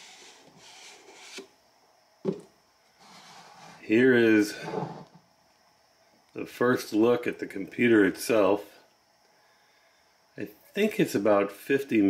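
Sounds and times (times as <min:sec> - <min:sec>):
cardboard rubbing and sliding: 0:00.0 - 0:01.5, 0:03.0 - 0:03.9, 0:04.6 - 0:05.2.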